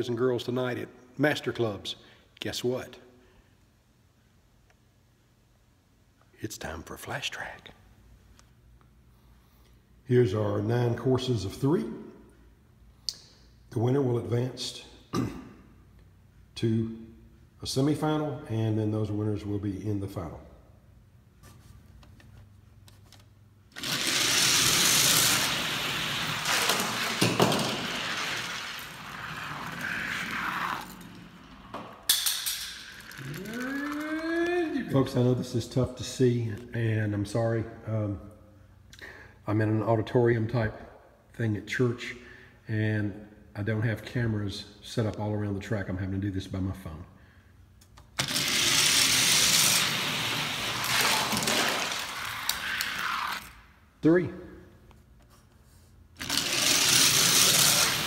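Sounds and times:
toy cars rolling down plastic track: 23.8 - 34.4, 48.2 - 53.5, 56.2 - 58.0.

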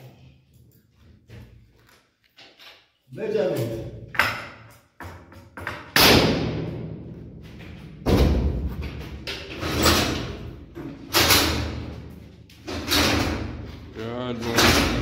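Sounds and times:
loud bangs in concrete room: 3.5 - 15.0.

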